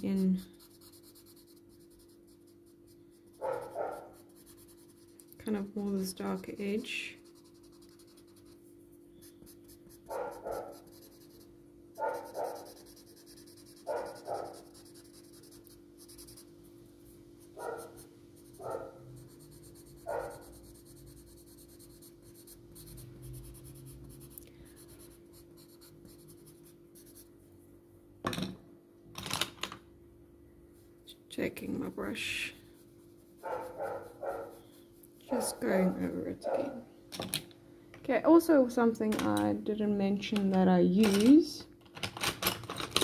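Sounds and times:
faint steady hum: 0.0 - 42.1
paper stump rubbing on paper: 12.2 - 16.5.

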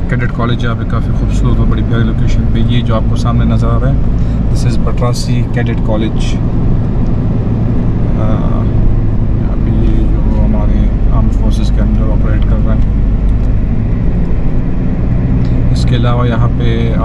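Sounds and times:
road and engine rumble in car: 0.0 - 17.0
quiet voices: 8.2 - 8.8.

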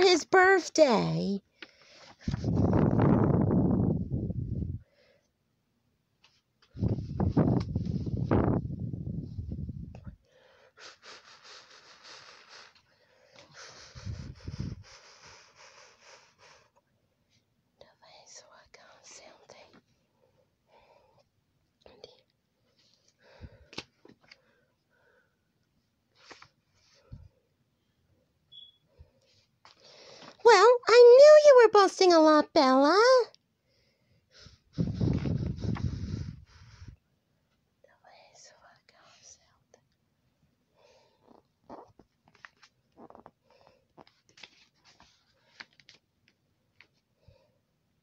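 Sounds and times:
faint whispering: 17.8 - 19.8, 21.8 - 22.3, 37.8 - 39.9
pages being turned: 26.1 - 26.8, 42.2 - 42.8, 44.0 - 47.0
person whispering: 37.9 - 39.8.

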